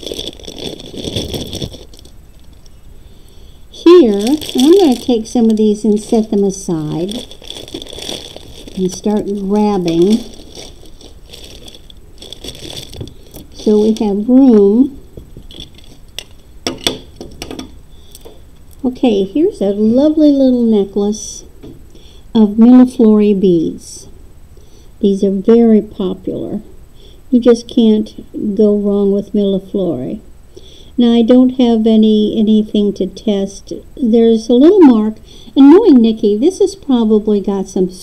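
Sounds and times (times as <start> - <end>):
plastic bag crinkling: 0.0 - 18.8.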